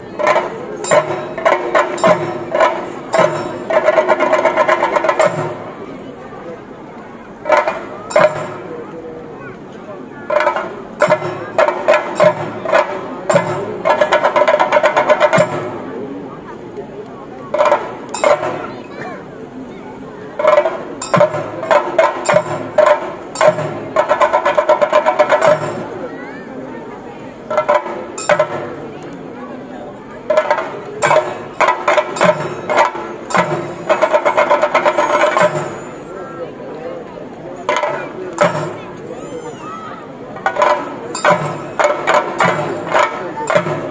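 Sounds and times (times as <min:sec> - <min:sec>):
fast drum roll with sticks: 0:00.0 - 0:05.8, 0:07.4 - 0:08.8, 0:10.3 - 0:16.2, 0:20.3 - 0:26.1, 0:27.4 - 0:29.3, 0:30.1 - 0:36.1, 0:37.6 - 0:43.9.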